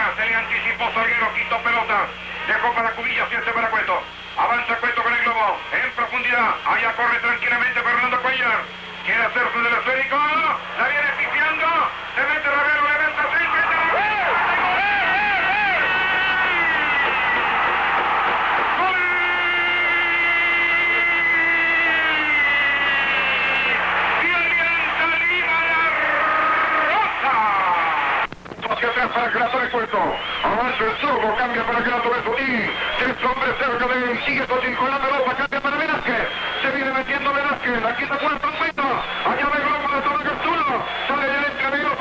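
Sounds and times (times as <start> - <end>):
radio sports commentator: 0.0 - 42.0.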